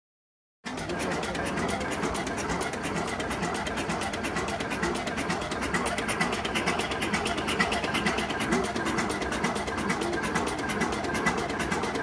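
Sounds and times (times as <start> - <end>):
diesel engine knocking steadily: 0.7 - 12.0.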